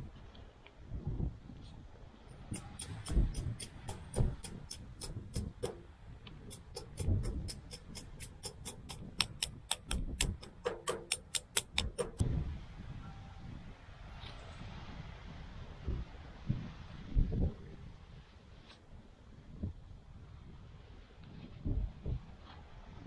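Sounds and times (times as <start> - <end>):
small hammer tapping on metal: 2.6 - 5.8, 6.5 - 12.2.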